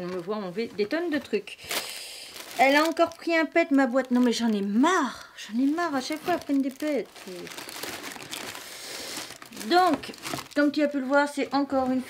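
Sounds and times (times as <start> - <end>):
packaging crinkling and rustling: 0.0 - 12.0.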